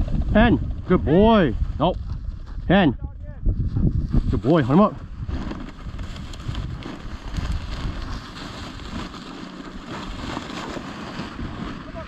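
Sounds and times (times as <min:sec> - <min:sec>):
wind buffeting microphone: 0:00.0 - 0:12.0
dry reeds rustling: 0:03.6 - 0:12.0.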